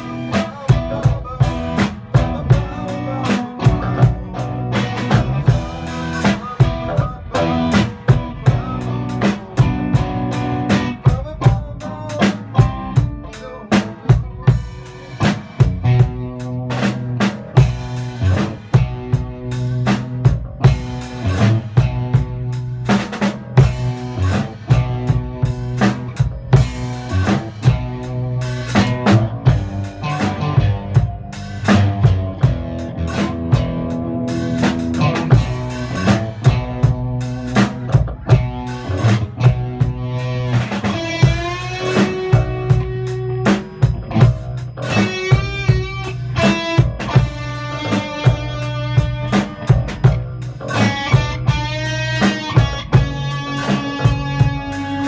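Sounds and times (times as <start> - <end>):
drums steady beat: 0.0 - 55.0
electric bass: 0.0 - 55.0
electric guitar bent notes: 0.0 - 55.0.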